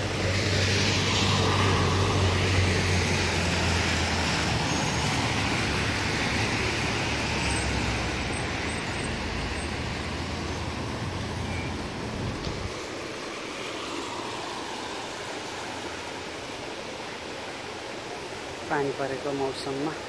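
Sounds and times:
passing vehicles engine drone: 0.0s - 17.0s
tyres hissing on wet asphalt: 0.0s - 20.0s.

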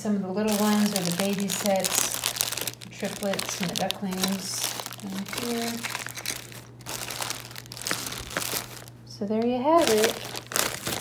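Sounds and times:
plastic bags crinkling: 0.4s - 11.0s.

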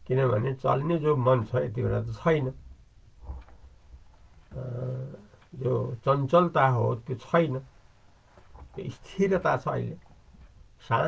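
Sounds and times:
man speaking: 0.0s - 2.6s, 4.5s - 7.7s, 8.7s - 10.0s, 10.8s - 11.0s.

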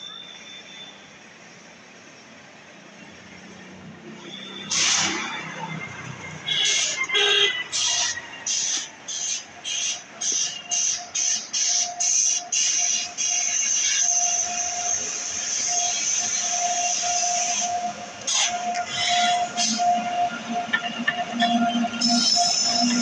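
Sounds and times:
train wheels squealing: 0.0s - 1.2s, 4.2s - 23.0s
train wheels clicking: 7.8s - 23.0s.

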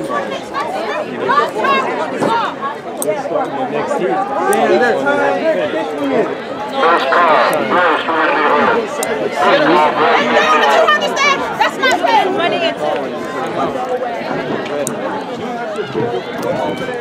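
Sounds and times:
people chattering: 0.0s - 17.0s.

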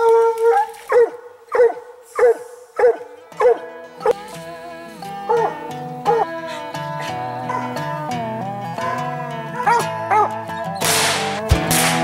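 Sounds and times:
dog howling: 0.0s - 10.8s
dog barking: 0.6s - 4.2s, 7.5s - 7.8s, 8.8s - 10.3s
music: 2.4s - 12.0s.

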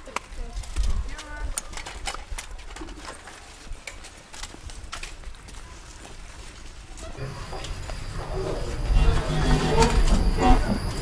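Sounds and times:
scooter wheels clicking on bricks: 0.0s - 8.0s
footsteps on brick paving: 0.0s - 9.3s.

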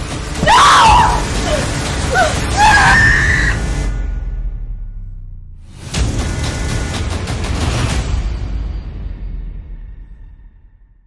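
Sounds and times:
woman crying out: 0.4s - 3.5s
woman screaming in terror: 0.4s - 3.6s.

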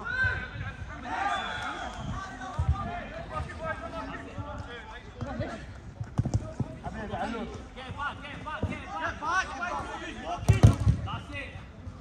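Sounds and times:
football being kicked: 10.4s - 11.1s.

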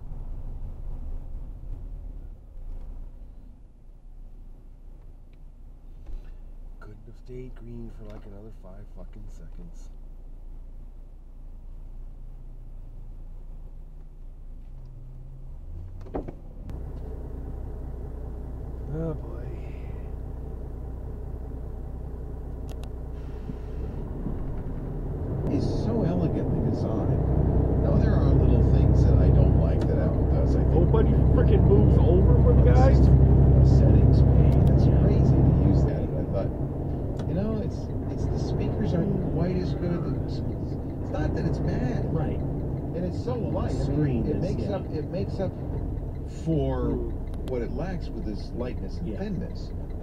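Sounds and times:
car engine and road hum: 0.0s - 50.0s.

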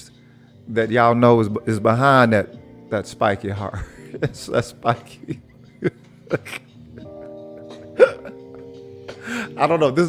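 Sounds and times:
man laughing: 3.7s - 8.8s.

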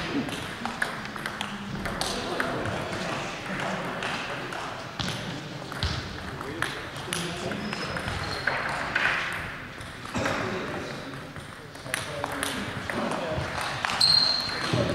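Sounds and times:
murmur of voices: 0.0s - 14.9s.

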